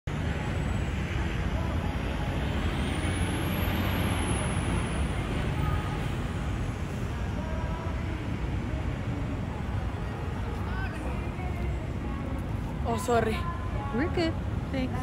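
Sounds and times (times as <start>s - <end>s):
city traffic rumble: 0.0s - 15.0s.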